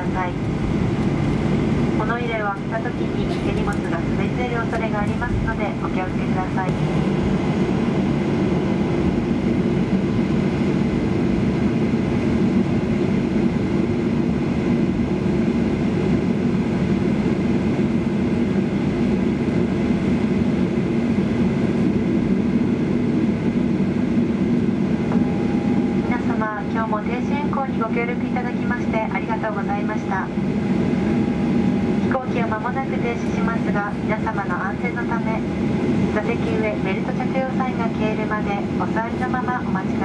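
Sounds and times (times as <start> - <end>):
aircraft cabin engine noise: 0.0 - 40.0
cabin pa announcement: 1.9 - 6.9.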